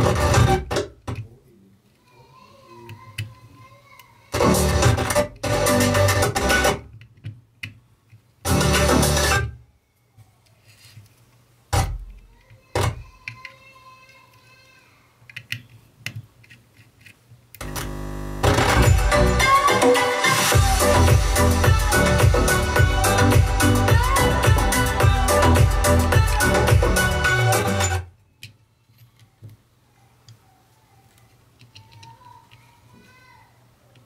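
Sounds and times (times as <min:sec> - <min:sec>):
music through loudspeakers: 0:04.4 - 0:06.8, 0:08.5 - 0:09.4, 0:18.4 - 0:28.0.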